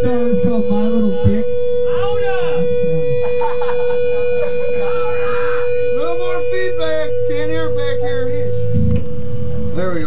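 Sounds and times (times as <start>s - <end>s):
people talking: 0.0s - 8.6s, 9.8s - 10.0s
amplifier electrical hum: 0.0s - 10.0s
held tone: 0.0s - 10.0s
low drone: 0.0s - 10.0s.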